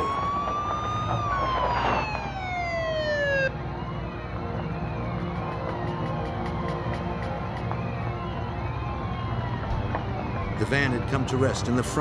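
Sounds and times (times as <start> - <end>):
faint wavering siren wails: 0.0 - 12.0
police siren wailing: 0.0 - 12.0.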